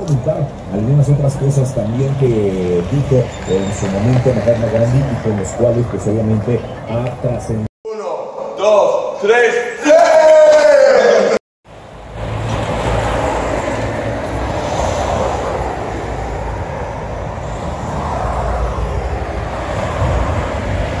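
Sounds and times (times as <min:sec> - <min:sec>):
person shouting: 0:07.9 - 0:11.4.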